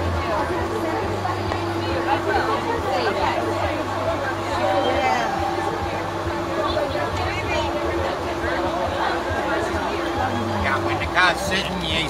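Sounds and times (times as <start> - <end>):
overlapping chatter: 0.0 - 12.0
steady low hum: 0.2 - 9.0.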